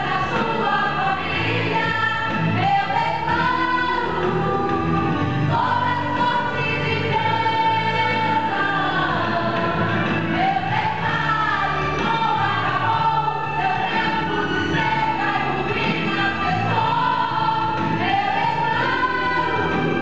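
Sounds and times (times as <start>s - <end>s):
women's choir singing a hymn: 0.0s - 20.0s.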